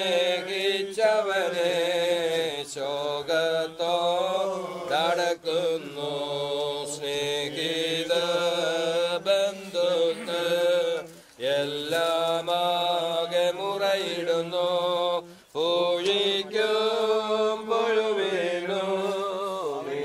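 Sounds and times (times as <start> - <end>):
men chanting a hymn: 0.0 - 20.0.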